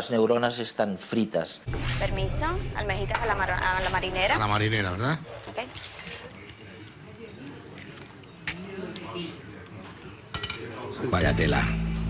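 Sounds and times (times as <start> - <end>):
faint voices murmuring: 5.0 - 11.5.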